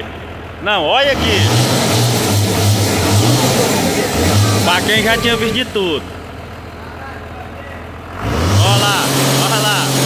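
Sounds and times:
large engine running hard: 0.0 - 10.0.

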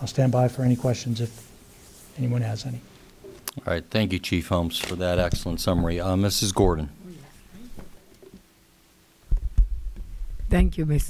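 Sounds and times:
faint steady hum: 0.0 - 11.0
thumps on desk microphone: 9.3 - 10.1.

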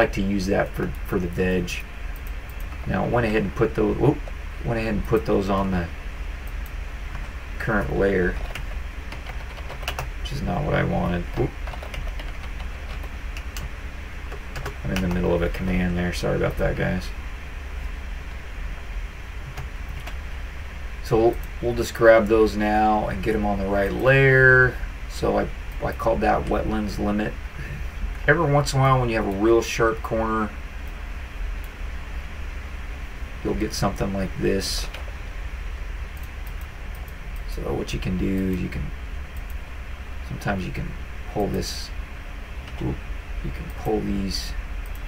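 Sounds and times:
steady low hum: 0.0 - 45.0
computer mouse and keyboard clicks: 8.4 - 10.1, 11.3 - 13.7, 14.3 - 15.3, 19.5 - 20.2.

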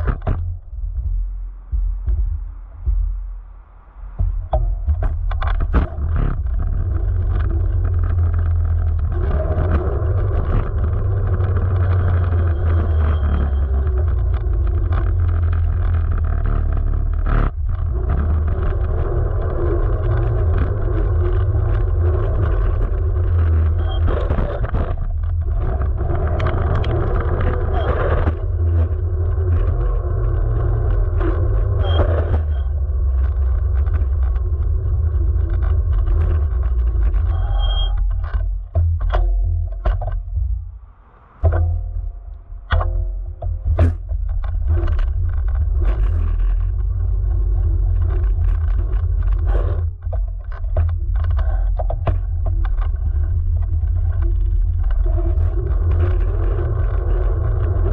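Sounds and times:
tyre and road rumble: 0.0 - 57.9.

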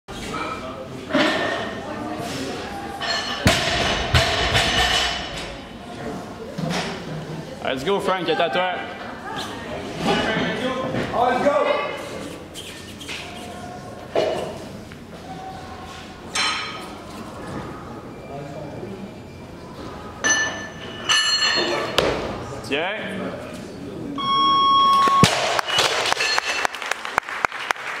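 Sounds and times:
large hall background noise: 0.1 - 28.0
electronic beep: 24.2 - 25.8
sharp claps and knocks: 25.3 - 28.0.

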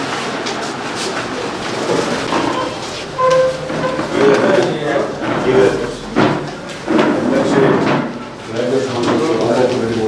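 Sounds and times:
men talking: 3.9 - 10.0.

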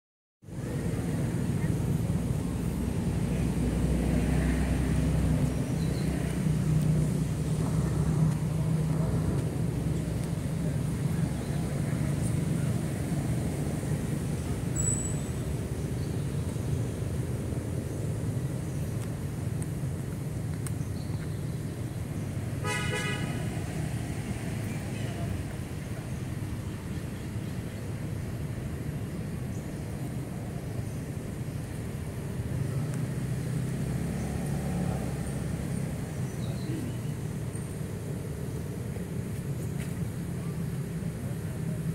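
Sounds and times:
road traffic: 0.4 - 41.9
vehicle engine rumble: 0.4 - 41.9
vehicle horn toot: 22.6 - 23.4.

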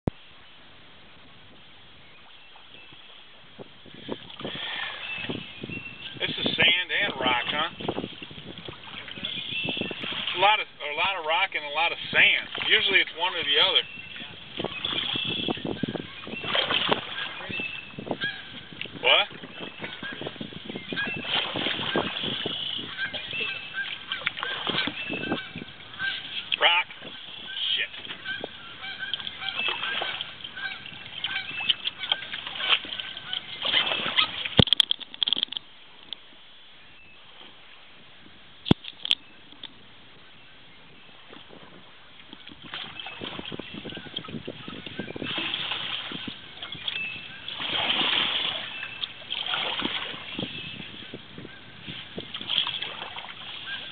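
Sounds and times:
rushing water: 0.1 - 36.3, 41.2 - 53.9
geese honking: 17.0 - 18.6, 20.9 - 34.4.

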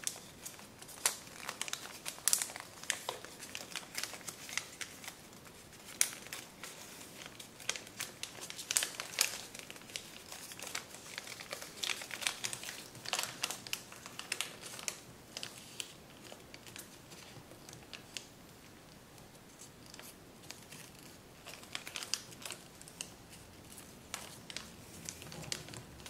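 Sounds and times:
paper crinkling and crackling: 0.0 - 26.0.

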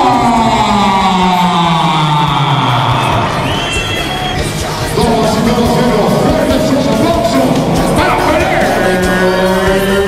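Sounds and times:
announcer's amplified voice: 0.0 - 10.0
crowd cheering: 0.0 - 10.0.

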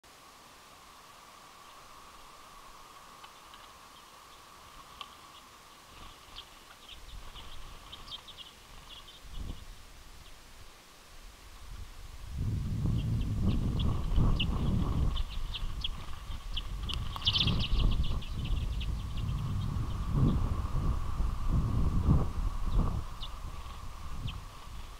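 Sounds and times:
faint steady hum: 0.1 - 24.9
birds chirping: 2.6 - 10.5, 12.8 - 24.9
low rumbling noise: 11.5 - 24.9.

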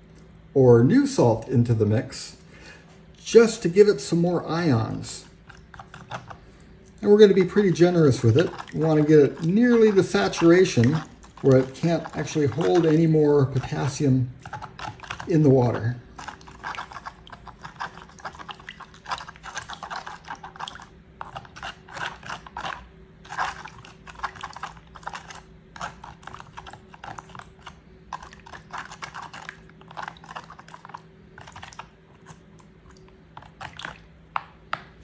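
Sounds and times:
faint steady hum: 0.0 - 35.0
fingers stirring salt in water: 4.2 - 35.0
grains scraping plastic container: 7.3 - 27.3.

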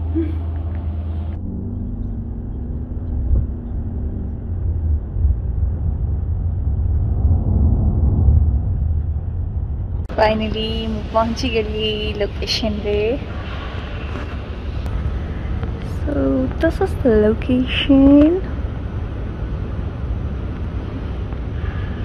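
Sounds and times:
car road and engine rumble: 0.0 - 22.0
low room hum: 0.0 - 22.0.

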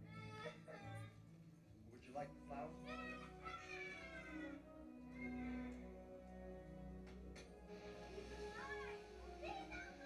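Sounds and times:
film background music: 0.0 - 10.0.

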